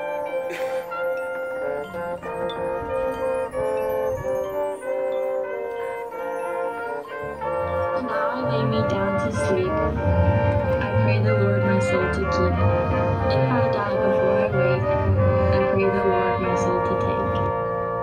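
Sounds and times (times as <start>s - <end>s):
low brass: 0.0s - 18.0s
marching band playing: 0.0s - 18.0s
sustained wind chords: 0.0s - 18.0s.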